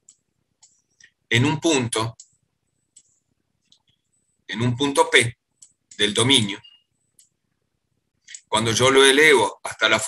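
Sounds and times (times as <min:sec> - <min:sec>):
computer mouse clicks: 0:00.0 - 0:01.2, 0:02.1 - 0:04.3, 0:05.5 - 0:07.4, 0:08.2 - 0:08.5
person speaking: 0:00.9 - 0:03.1, 0:03.7 - 0:07.4, 0:08.2 - 0:10.0.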